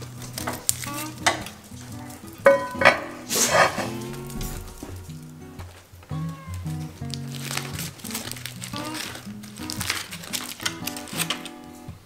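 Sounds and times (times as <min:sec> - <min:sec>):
tongs raking coals: 0:00.0 - 0:11.9
soft background music: 0:00.0 - 0:12.0
sharp metallic clanks: 0:02.4 - 0:05.2
skillet scraping onto trivet: 0:02.5 - 0:04.8.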